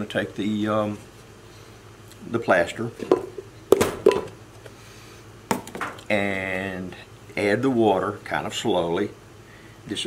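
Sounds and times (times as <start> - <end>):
plastic cup knocking glass jug: 3.0 - 4.3.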